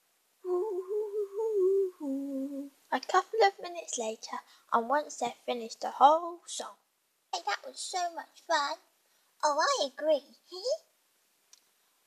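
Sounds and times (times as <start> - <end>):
girl humming: 0.4 - 2.8.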